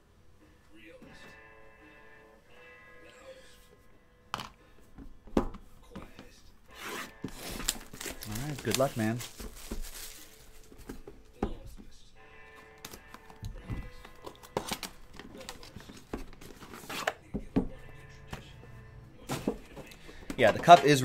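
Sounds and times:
faint background music: 0.0 - 21.0
cardboard packaging rustling: 6.7 - 11.4, 12.6 - 17.2, 19.2 - 21.0.

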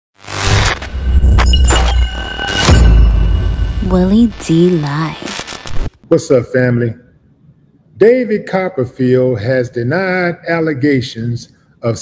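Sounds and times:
glitch effect with shattering hit: 0.2 - 6.0.

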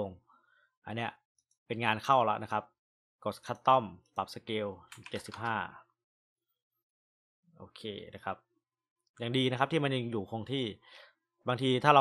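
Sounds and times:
man talking: 3.2 - 5.8, 7.6 - 8.4, 9.2 - 10.8, 11.5 - 12.0
keyboard keystrokes: 4.9 - 5.6.

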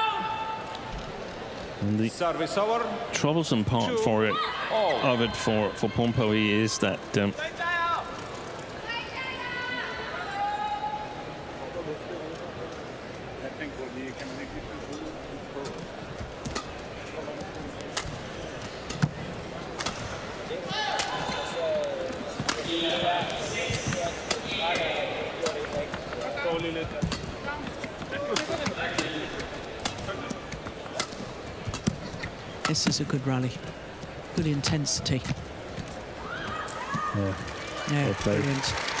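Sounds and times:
rackets hitting shuttlecock: 17.6 - 20.2, 20.9 - 32.8
shoes squeaking on court floor: 21.1 - 37.2.

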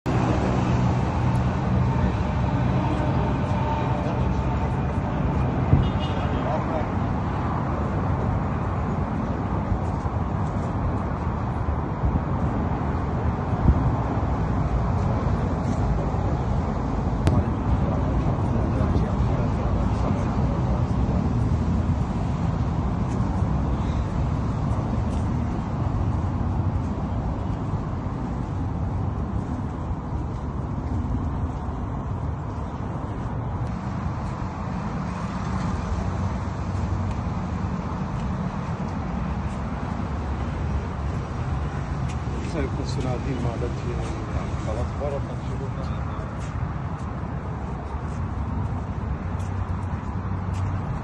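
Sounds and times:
traffic rumble: 0.0 - 51.0
people's voices: 1.9 - 8.4, 17.2 - 21.4, 42.1 - 47.2.

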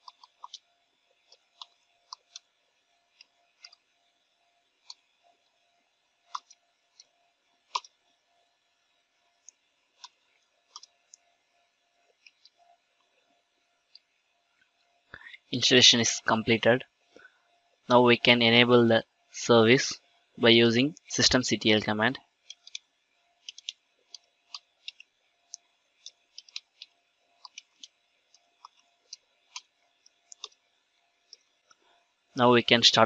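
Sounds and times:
faint steady hum: 0.0 - 33.0
keyboard keys clicking: 23.4 - 27.9.

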